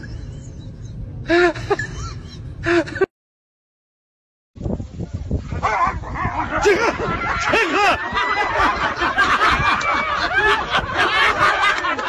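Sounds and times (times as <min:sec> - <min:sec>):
laughter: 0:00.0 - 0:03.1, 0:06.2 - 0:12.0
people yelping and crying out: 0:05.6 - 0:11.8.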